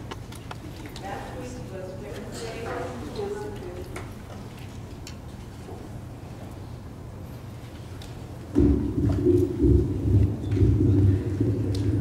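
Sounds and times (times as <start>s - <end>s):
faint voice speaking with echo: 1.0s - 4.0s.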